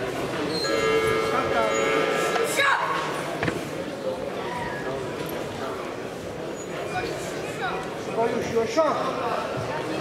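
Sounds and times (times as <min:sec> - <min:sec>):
mixed voices chattering: 0:00.0 - 0:10.0
steady held chord tone: 0:00.7 - 0:02.6.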